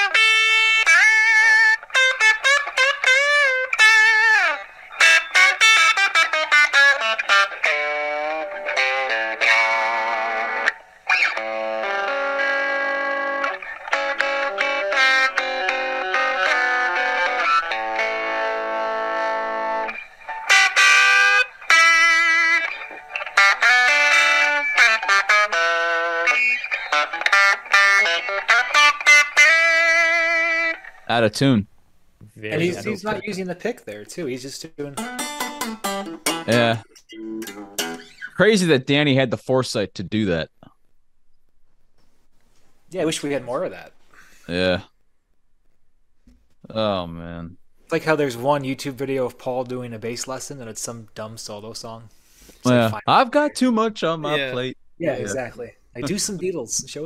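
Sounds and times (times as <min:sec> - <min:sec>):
overdriven electric guitar through phone: 0:00.0 - 0:31.1, 0:34.9 - 0:38.4, 0:52.6 - 0:53.6.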